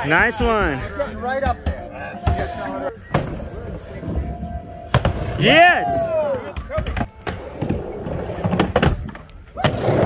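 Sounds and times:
skateboard wheels rolling: 0.9s - 10.0s.

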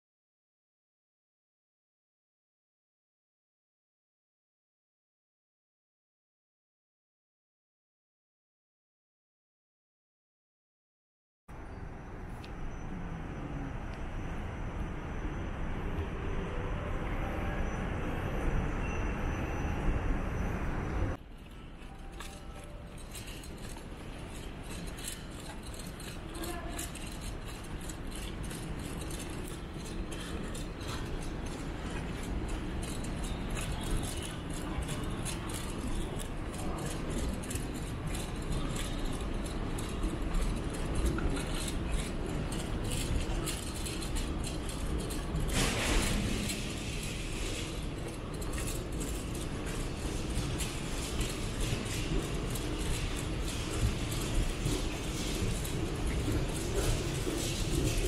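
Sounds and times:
low rumble of large hall: 11.5s - 58.0s
light clicks and rattles: 21.4s - 58.0s.

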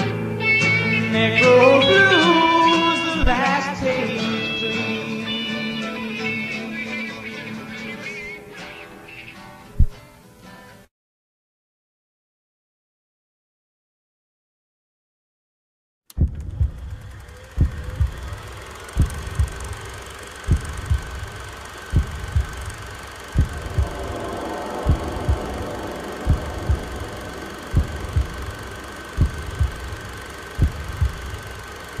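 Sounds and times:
steady high tone: 0.0s - 9.6s, 16.9s - 32.0s
heartbeat thumps: 16.2s - 32.0s
hiss: 16.6s - 32.0s.

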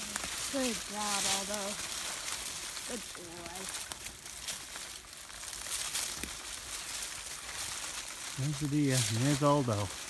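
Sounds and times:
fir boughs and twigs rustling: 0.0s - 10.0s.

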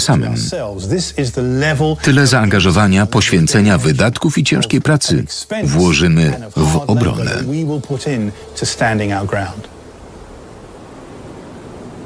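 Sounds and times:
steady rushing noise: 0.0s - 12.0s.

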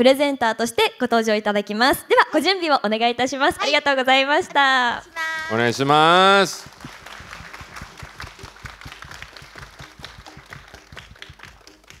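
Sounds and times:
audience applauding: 5.4s - 12.0s.

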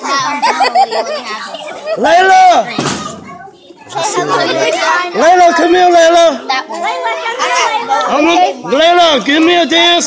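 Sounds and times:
children chattering and playing: 0.0s - 10.0s.

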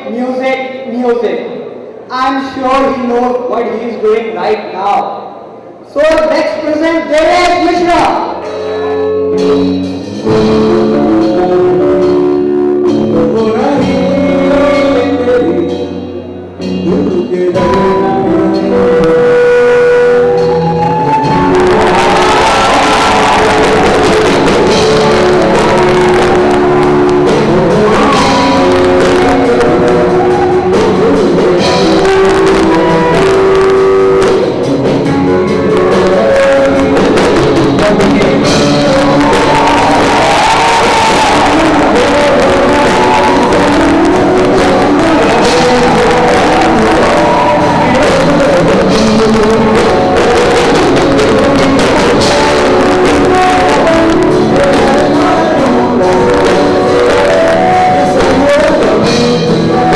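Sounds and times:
live rock band playing: 5.3s - 59.9s
drum kit: 7.1s - 59.9s
electric guitar: 8.0s - 59.9s
man singing into a microphone: 10.2s - 16.2s, 16.8s - 34.4s, 35.4s - 59.9s.

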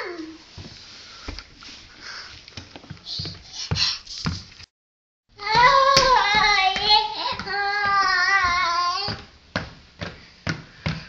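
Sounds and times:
toddler singing: 5.4s - 9.3s
sneakers clomping on tile floor: 5.5s - 11.0s.

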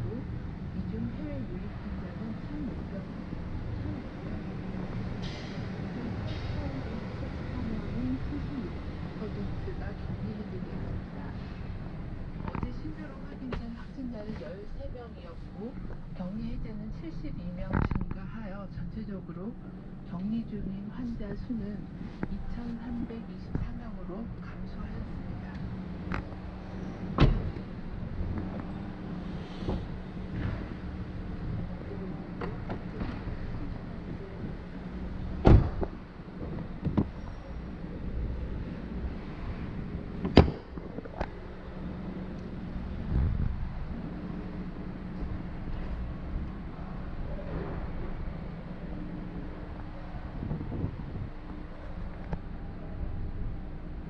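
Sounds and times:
steady low hum: 0.0s - 54.0s
car doors knocking and clunking: 27.2s - 27.6s, 35.4s - 37.2s, 40.1s - 41.2s.

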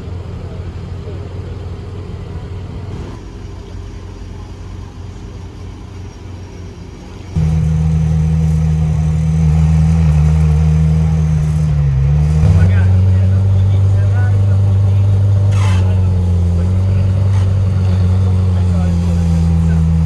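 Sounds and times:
sports car engine starting and idling: 0.0s - 20.0s.

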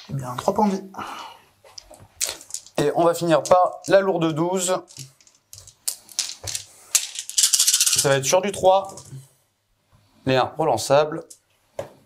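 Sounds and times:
plastic dice clicking: 1.8s - 8.1s, 8.8s - 9.1s.

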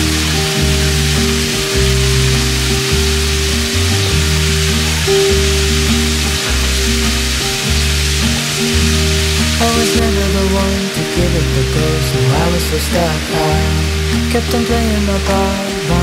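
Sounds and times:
meat and vegetables sizzling in pan: 0.0s - 10.8s
background music with bass line: 0.0s - 16.0s.

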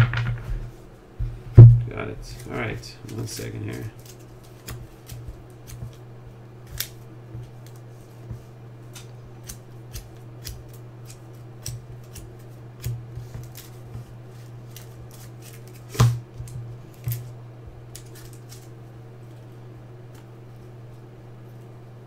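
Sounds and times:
steady low hum: 0.0s - 22.0s
cards in plastic sleeves rustling: 2.1s - 5.9s, 13.2s - 16.0s, 17.9s - 18.8s.

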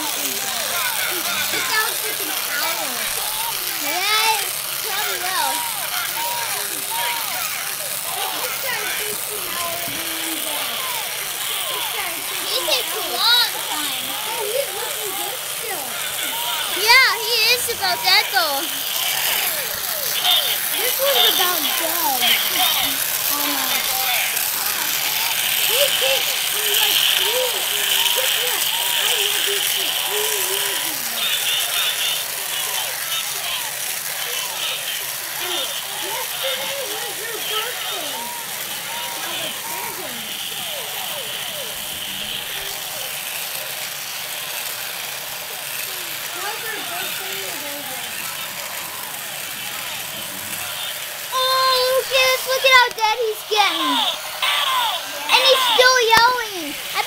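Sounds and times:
toy electronic yelling voice: 0.0s - 43.1s, 45.9s - 57.0s.

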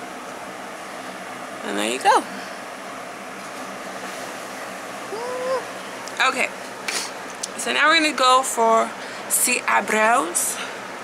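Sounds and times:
electric fan running: 0.0s - 11.0s
woman humming: 5.1s - 5.7s.

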